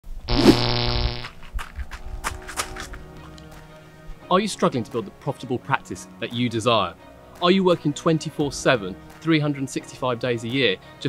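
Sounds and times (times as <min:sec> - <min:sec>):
low buzzy held note: 0:00.3 - 0:01.3.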